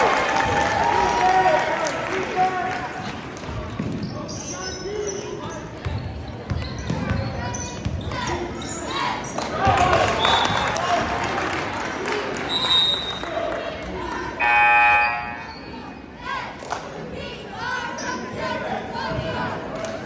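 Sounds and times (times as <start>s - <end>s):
sneaker squeaks: 3.7s - 9.5s, 14.4s - 16.0s
electronic buzzer: 14.4s - 15.3s.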